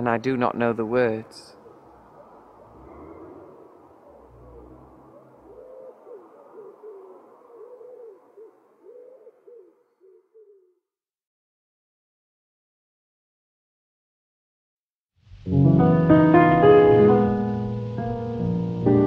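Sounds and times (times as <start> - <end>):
bird cooing faintly: 1.2 - 10.9.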